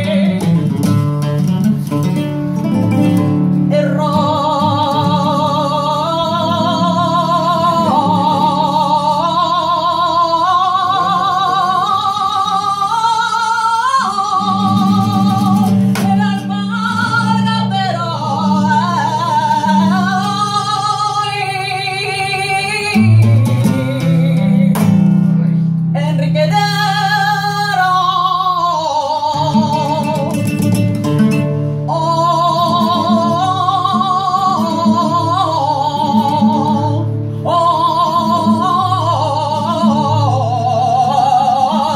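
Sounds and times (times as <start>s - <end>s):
woman singing with vibrato: 0.0s - 1.6s, 2.7s - 25.0s, 25.9s - 41.9s
acoustic flamenco guitar: 0.0s - 41.9s.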